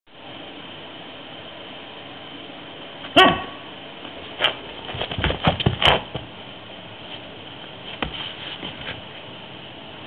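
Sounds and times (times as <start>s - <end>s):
dog barking: 3.1s - 3.7s.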